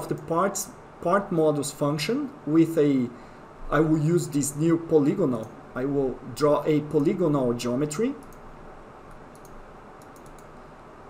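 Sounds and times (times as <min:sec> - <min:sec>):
low room hiss: 0:00.0 - 0:11.0
computer mouse clicks: 0:08.2 - 0:08.5, 0:09.1 - 0:10.6.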